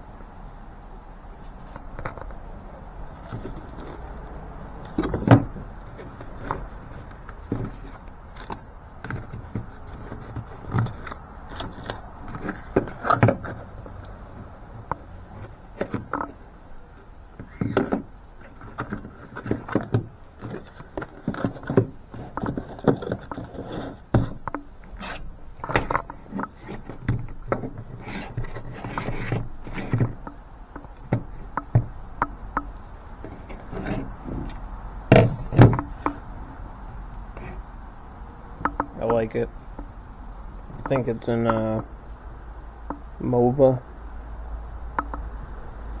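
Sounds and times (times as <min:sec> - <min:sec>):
low steady rumble: 0:00.0 - 0:46.0
cardboard and paper rustling: 0:03.1 - 0:14.5, 0:17.4 - 0:30.2.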